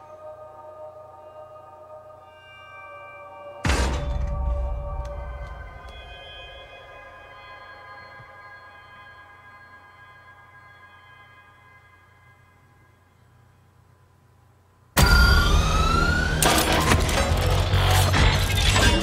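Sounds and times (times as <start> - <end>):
ringing chord of steady tones: 0.0 - 13.9
rising whines: 15.0 - 18.2
dense mechanical clatter: 16.4 - 19.0.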